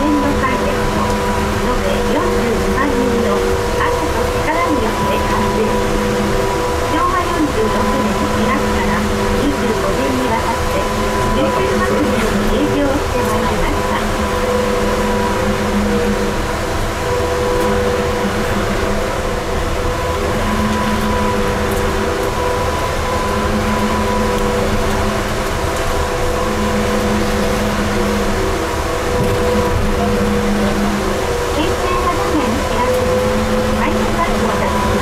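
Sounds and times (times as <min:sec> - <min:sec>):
low rumble of trolleybus: 0:00.0 - 0:35.0
whining drive tones: 0:00.0 - 0:35.0.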